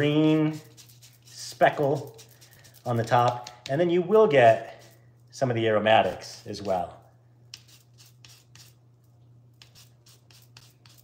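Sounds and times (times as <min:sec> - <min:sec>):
rind grating strokes: 0:00.3 - 0:03.8, 0:07.5 - 0:08.8, 0:09.6 - 0:11.0.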